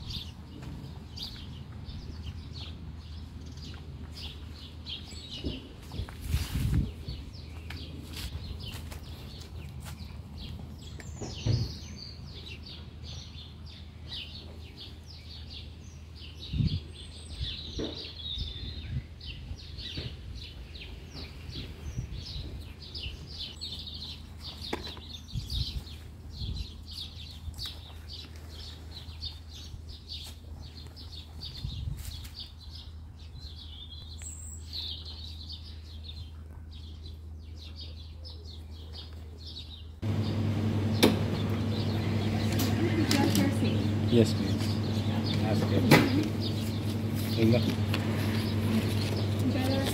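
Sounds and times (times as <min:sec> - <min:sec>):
small birds chirping: 0:00.0 - 0:49.9
louder steady hum: 0:40.0 - 0:49.9.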